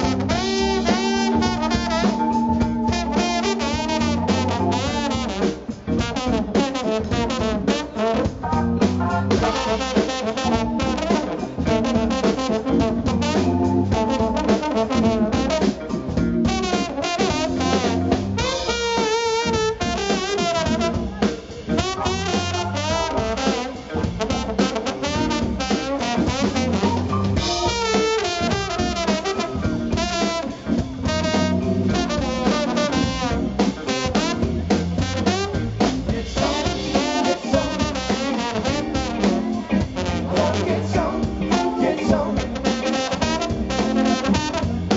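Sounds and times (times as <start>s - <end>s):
brass horns: 0.0s - 44.9s
drum kit: 0.0s - 44.9s.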